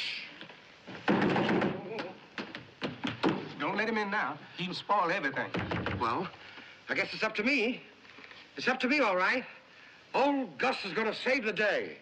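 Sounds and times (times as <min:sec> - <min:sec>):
knocking on a door: 0:05.5 - 0:06.2.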